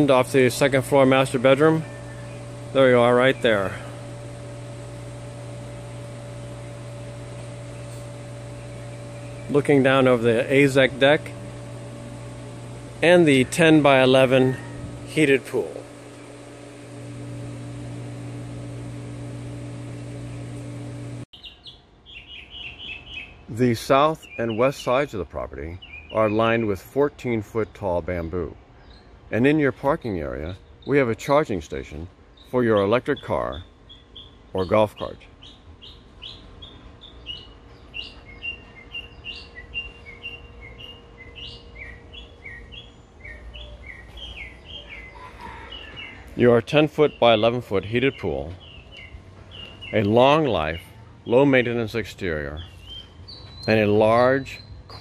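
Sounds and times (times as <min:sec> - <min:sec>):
machine hum with low drone: 0:00.0 - 0:21.3, 0:35.3 - 0:55.0
songbirds chirping: 0:00.0 - 0:55.0.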